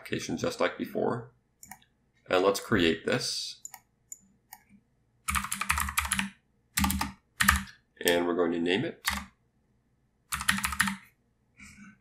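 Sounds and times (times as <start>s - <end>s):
computer keyboard typing: 5.3s - 8.2s, 9.0s - 9.3s, 10.3s - 11.0s.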